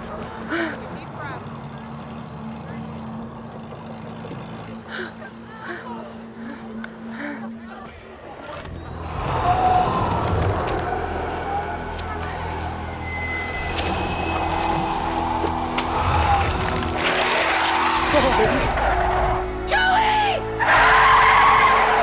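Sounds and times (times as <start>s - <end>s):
orchestral film score: 4.3s - 22.0s.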